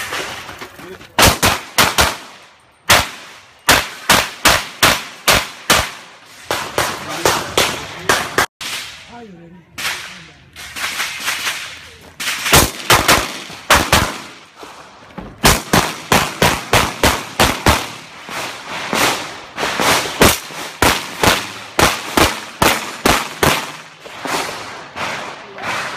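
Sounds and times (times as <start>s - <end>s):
pistol shots: 10.8s - 14.4s, 15.4s - 18.0s.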